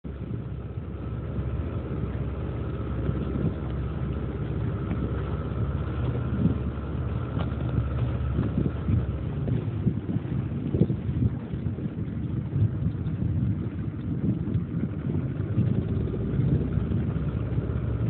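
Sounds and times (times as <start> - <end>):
outboard motor running: 0.0 - 18.0
wind on microphone: 0.1 - 18.0.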